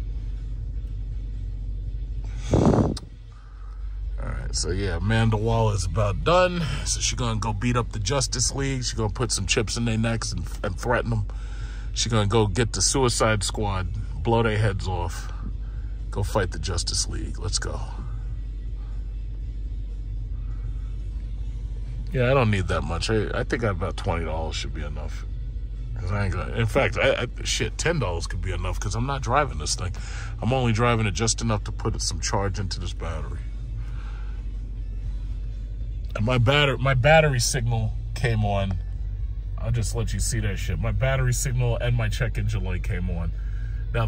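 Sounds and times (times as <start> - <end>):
car engine idling: 0.0 - 44.0
faint music: 0.0 - 44.0.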